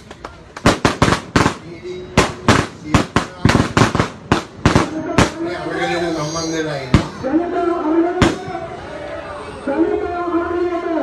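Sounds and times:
firecrackers banging: 0:00.0 - 0:07.4, 0:08.1 - 0:08.7.

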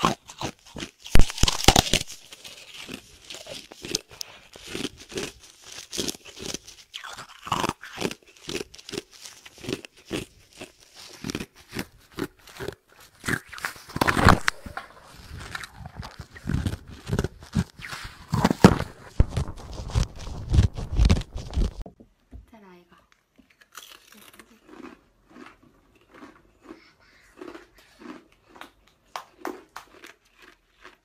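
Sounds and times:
ice crunching between teeth: 0:00.0 - 0:21.8, 0:23.5 - 0:31.0.

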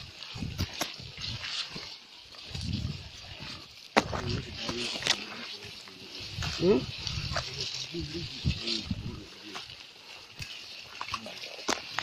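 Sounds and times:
brush rustling and cracking: 0:00.0 - 0:12.0
steady high hiss: 0:00.0 - 0:12.0.

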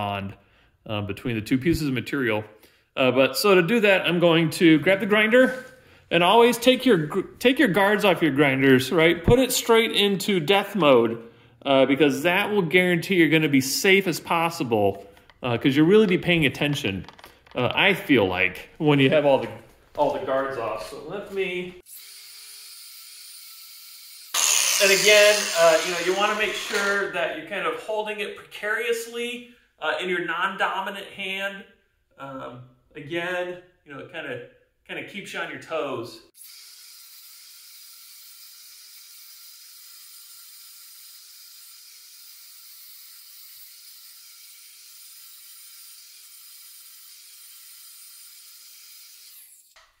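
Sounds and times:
angle grinder grinding steel: 0:21.9 - 0:27.2, 0:36.4 - 0:50.0
angle grinder whining: 0:21.9 - 0:27.2.

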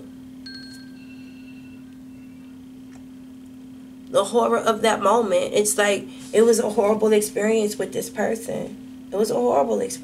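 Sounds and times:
steady low hum: 0:00.0 - 0:10.0
thin high-pitched tones: 0:00.4 - 0:02.6.

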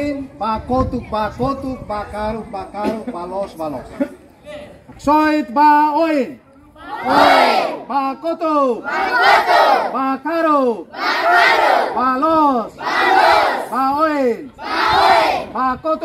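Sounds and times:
children shouting a chant: 0:06.9 - 0:07.8, 0:08.8 - 0:10.0, 0:10.9 - 0:12.0, 0:12.8 - 0:13.8, 0:14.6 - 0:15.5.

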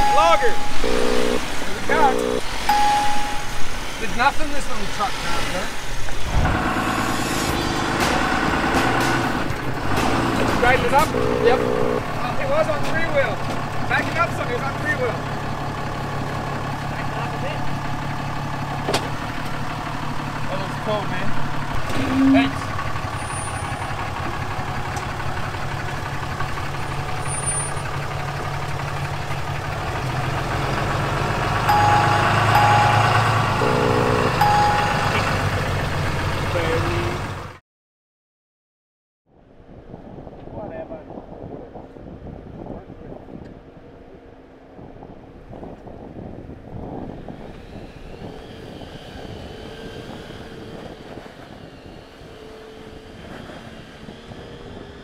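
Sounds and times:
indistinct voices: 0:00.0 - 0:04.2, 0:10.2 - 0:14.9, 0:21.0 - 0:22.8
truck engine running at low revs: 0:00.0 - 0:37.6, 0:39.6 - 0:55.0.

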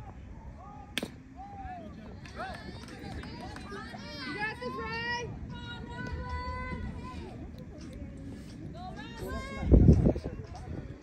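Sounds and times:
bat striking ball crack: 0:01.0 - 0:01.2.

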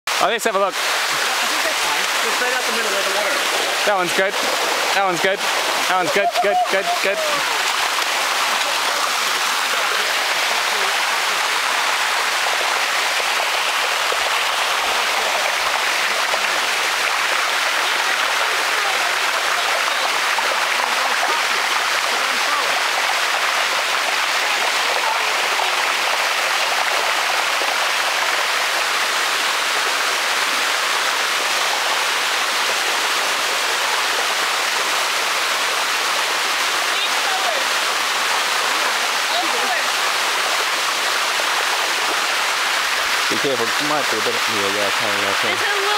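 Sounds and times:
water rushing over waterfall: 0:00.1 - 0:45.9.

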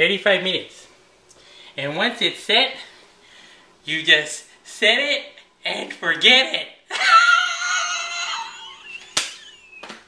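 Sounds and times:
man shrieking laugh: 0:06.9 - 0:09.8.

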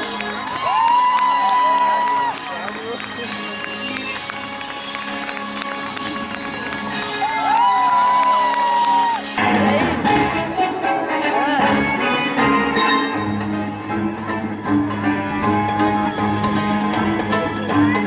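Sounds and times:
song with long held notes: 0:00.0 - 0:18.0
orchestral strings: 0:08.9 - 0:18.0.

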